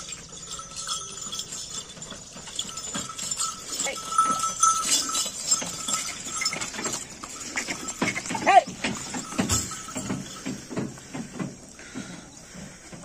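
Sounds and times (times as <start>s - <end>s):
hooves on dirt: 0.0s - 13.0s
wooden cart rattling: 0.0s - 13.0s.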